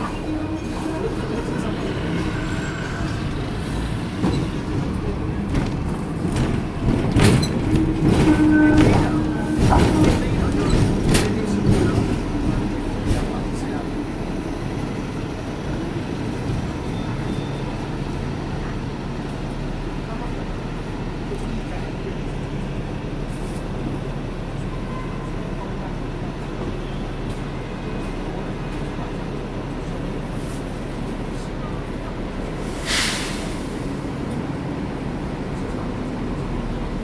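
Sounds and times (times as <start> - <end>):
tram rumble: 0.0 - 37.0.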